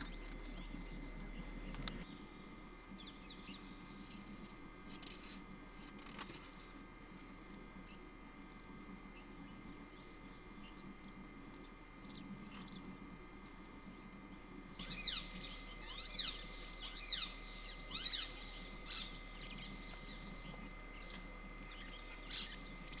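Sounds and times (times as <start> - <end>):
high bird chirps: 14.1 - 23.0
loud falling bird calls: 14.8 - 23.0.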